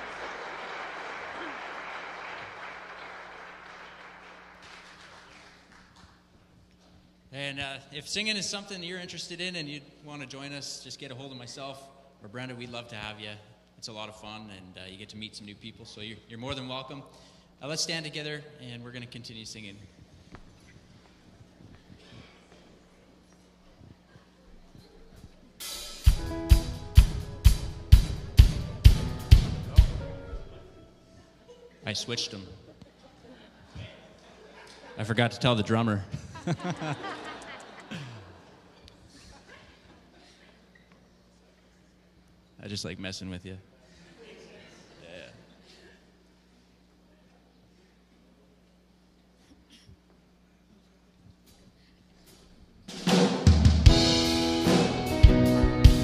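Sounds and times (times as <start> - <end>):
heavy drum beat: 25.6 - 30.2, 52.9 - 56.0
live band playing: 25.6 - 30.7, 52.9 - 56.0
sustained bass and guitar notes: 25.6 - 31.0, 53.6 - 56.0.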